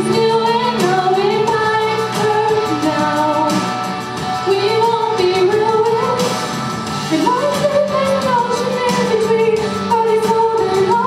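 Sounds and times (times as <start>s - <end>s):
woman singing into a microphone: 0.0s - 3.8s, 4.4s - 6.5s, 7.1s - 11.0s.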